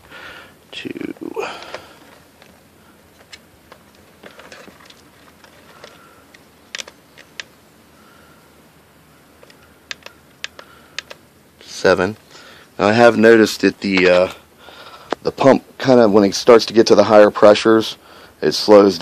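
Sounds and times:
plastic buttons clicking: 9.4 - 11.2.

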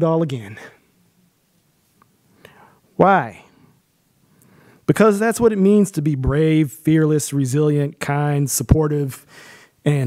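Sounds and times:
man speaking: 0.0 - 0.8, 3.0 - 3.6, 4.9 - 10.0
soft breath: 2.3 - 2.9, 3.5 - 4.9, 9.3 - 9.8.

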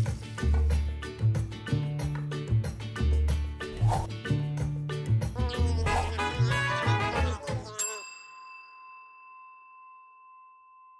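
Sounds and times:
bell-like ding: 7.8 - 10.9.

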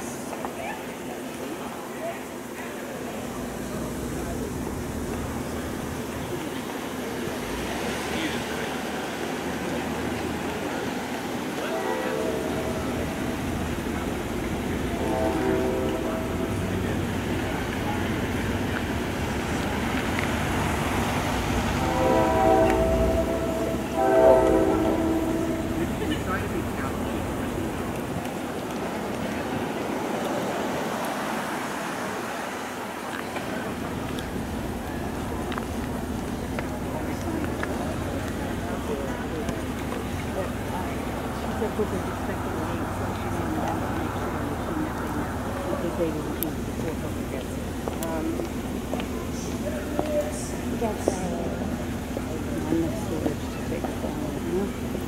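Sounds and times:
steady outdoor rumble: 0.0 - 55.0
vehicle horn blasts: 14.9 - 16.7, 21.8 - 26.5.

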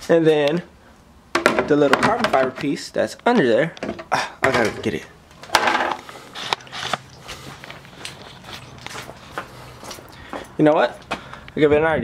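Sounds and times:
camera handling knocks and rustles: 5.4 - 7.9.

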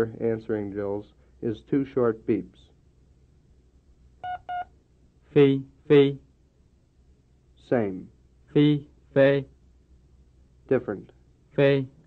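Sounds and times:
short electronic beeps: 4.2 - 4.7.

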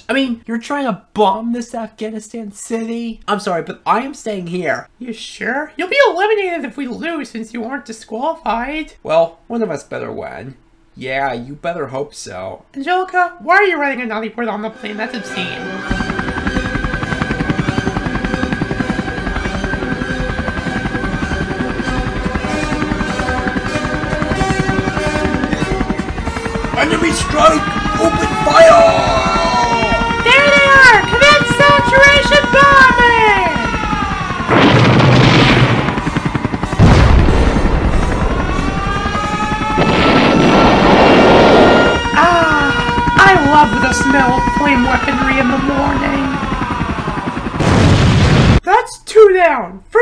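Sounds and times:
music: 14.4 - 28.6
aircraft engine drone: 14.7 - 48.6
helicopter rotors chopping: 14.9 - 48.6
loud sustained rumble: 33.4 - 45.5
explosion: 34.5 - 36.2, 36.8 - 38.7, 39.8 - 42.0, 47.6 - 48.6.

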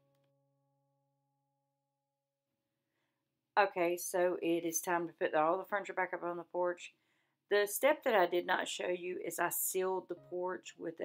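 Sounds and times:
person narrating: 7.5 - 11.0.

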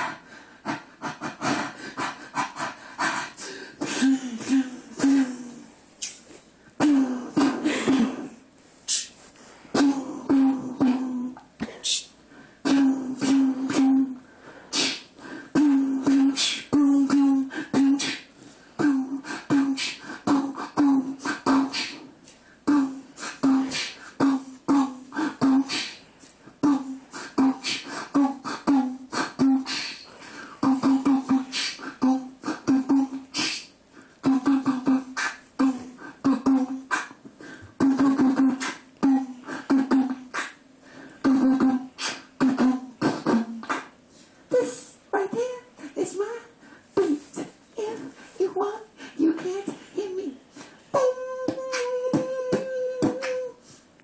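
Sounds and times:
person beatboxing into microphone: 0.0 - 6.2, 6.8 - 9.2, 9.8 - 40.6, 41.2 - 46.4, 47.0 - 53.8.

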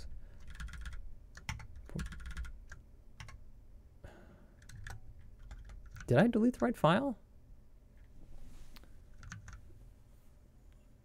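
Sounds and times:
keyboard typing: 0.4 - 3.4, 4.6 - 6.7, 9.1 - 9.6.

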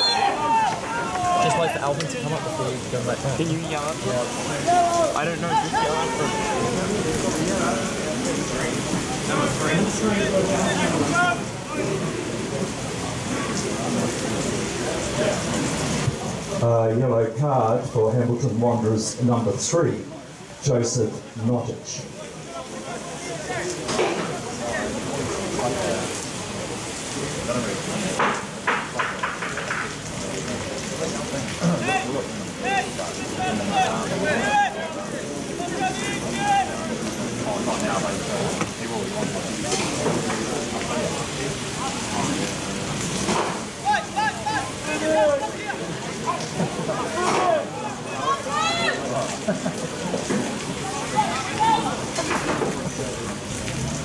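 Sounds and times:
people shouting: 0.0 - 1.8, 4.6 - 7.0, 10.5 - 12.0, 31.8 - 36.9, 43.8 - 49.2, 50.8 - 52.0
rain hissing: 0.0 - 54.0.

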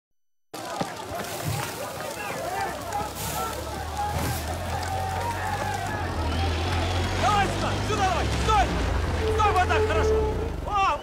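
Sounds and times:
people shouting: 0.6 - 11.0
vehicle engine rumbling: 1.1 - 11.0.

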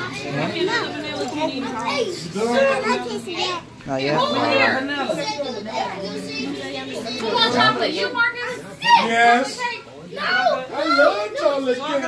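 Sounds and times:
young children chattering: 0.0 - 12.0.

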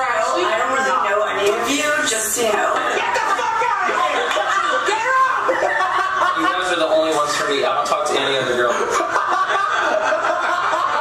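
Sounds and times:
people laughing and chuckling: 2.7 - 11.0.

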